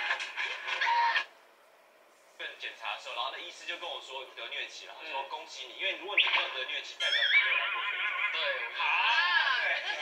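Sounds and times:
television drama audio with music: 0:00.0 - 0:02.0, 0:02.8 - 0:10.0.

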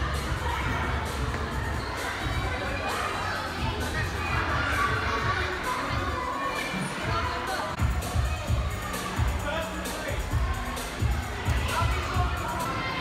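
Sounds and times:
children shouting and calling: 0:00.0 - 0:13.0.

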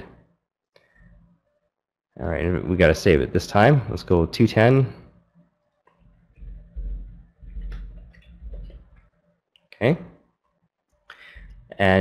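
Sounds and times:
keyboard and mouse clicks: 0:06.4 - 0:09.8.

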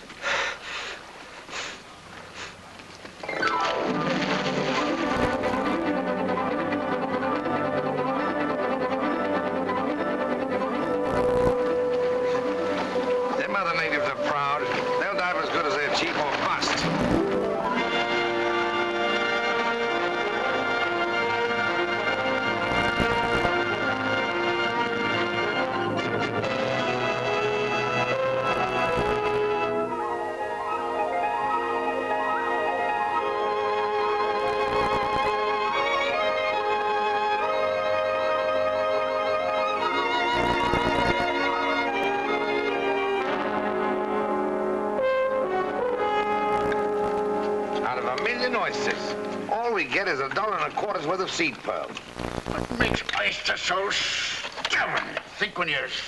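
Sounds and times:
orchestral film score: 0:03.3 - 0:51.2.

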